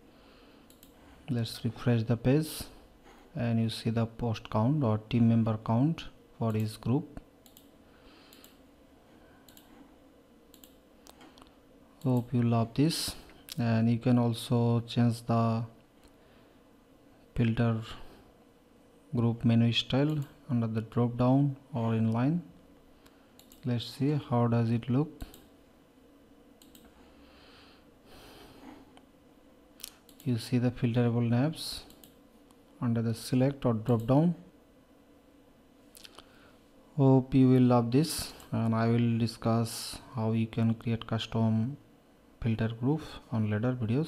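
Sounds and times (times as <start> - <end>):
computer mouse clicks: 0.7 - 1.0, 7.4 - 7.7, 8.3 - 8.6, 9.4 - 9.8, 10.5 - 12.4, 23.4 - 23.7, 25.2 - 25.5, 26.6 - 27.0, 29.8 - 30.3, 31.9 - 32.2.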